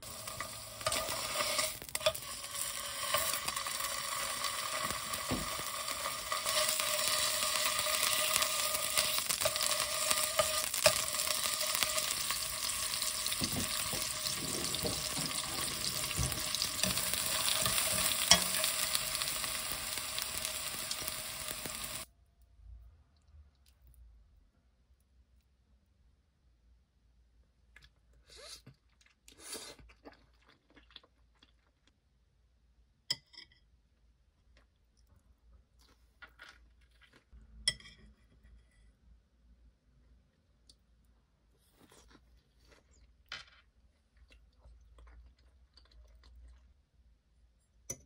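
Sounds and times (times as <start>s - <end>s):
fish sizzling in frying pan: 0.0s - 22.1s
oil crackling and popping: 0.0s - 22.1s, 28.6s - 32.0s.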